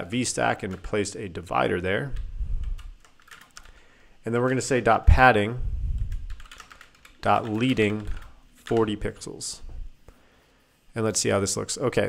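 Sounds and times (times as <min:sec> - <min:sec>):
computer keyboard typing: 0:02.2 - 0:04.7, 0:06.0 - 0:09.3.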